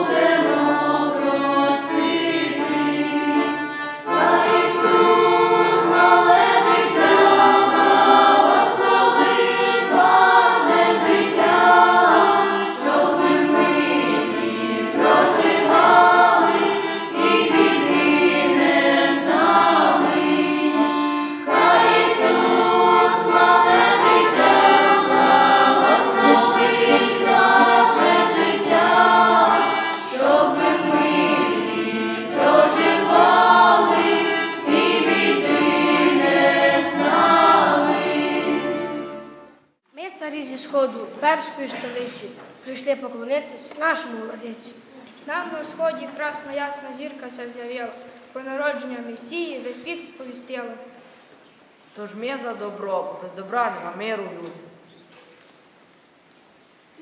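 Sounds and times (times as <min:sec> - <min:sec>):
button accordion: 0:00.0 - 0:39.5
choir singing a carol: 0:00.0 - 0:39.7.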